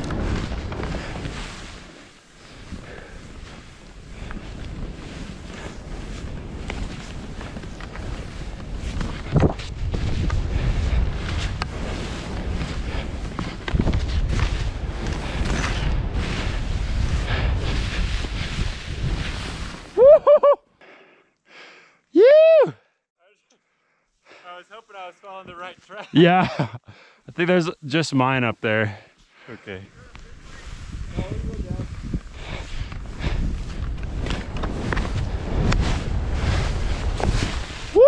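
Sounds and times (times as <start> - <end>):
skis crunching through snow: 0.0 - 20.1, 29.4 - 38.0
wind rushing over microphone: 0.0 - 20.1, 29.8 - 38.0.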